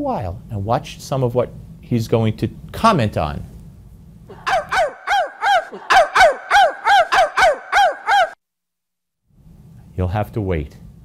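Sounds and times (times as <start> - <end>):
quick bird-like calls: 4.3 - 8.4.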